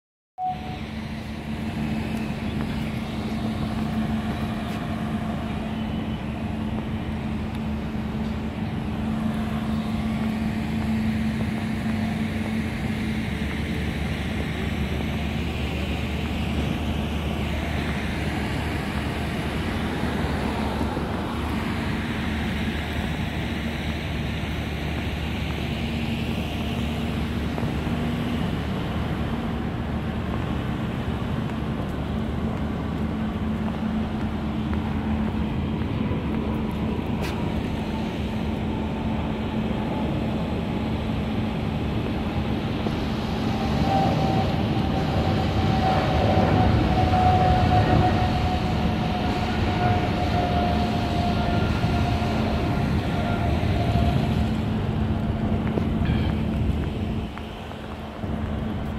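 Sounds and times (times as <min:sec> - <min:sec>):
cars passing: 0:00.4 - 0:58.9
constant low traffic hum: 0:00.4 - 0:58.9.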